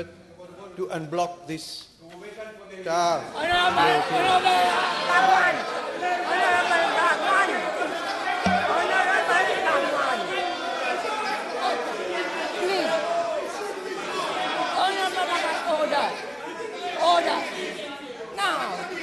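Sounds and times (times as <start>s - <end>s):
many voices chattering and heckling: 2.9s - 19.0s.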